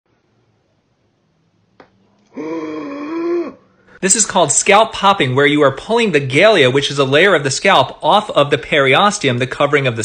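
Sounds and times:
voice holding a steady note: 2.3s - 3.6s.

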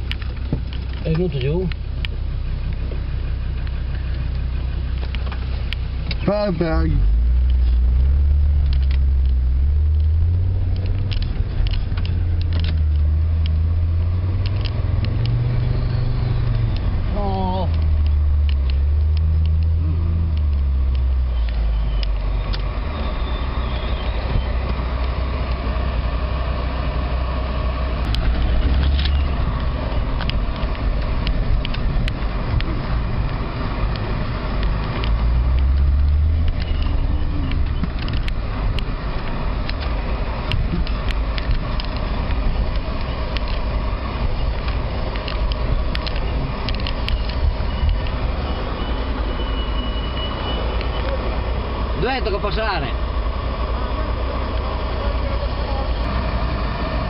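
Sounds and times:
engine rumbling at low revs: 0.0s - 57.0s.

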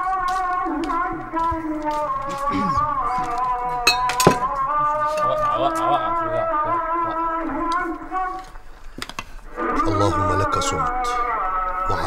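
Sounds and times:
held background music: 0.0s - 8.7s, 9.4s - 12.0s
glasses and tableware clinking: 3.8s - 5.3s.

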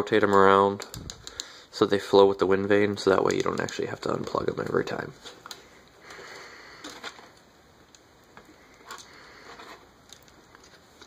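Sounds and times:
plastic parts rubbing and clicking: 3.0s - 6.2s, 8.4s - 11.0s.

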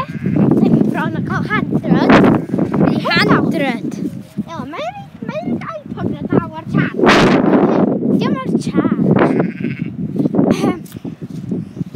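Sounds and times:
people's voices: 0.0s - 9.2s
farm animal calling: 9.2s - 9.9s.

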